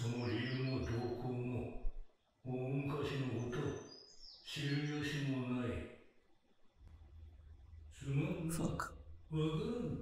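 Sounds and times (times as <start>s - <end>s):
man speaking in a low voice: 0.0s - 6.0s, 7.9s - 10.0s.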